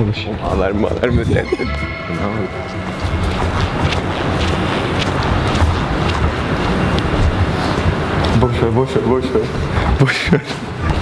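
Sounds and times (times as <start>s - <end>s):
low rumble: 0.9s - 8.4s.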